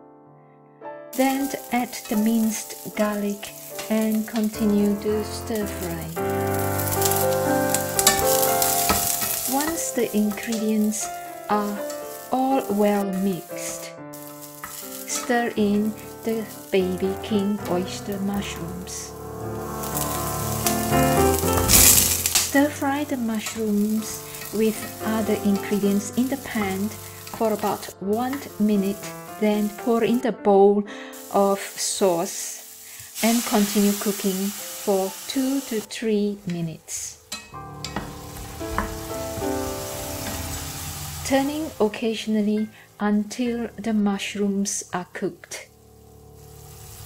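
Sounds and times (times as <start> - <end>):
background music: 0.0 - 47.0
mushrooms sizzling in hot oil: 1.1 - 30.4, 31.0 - 47.0.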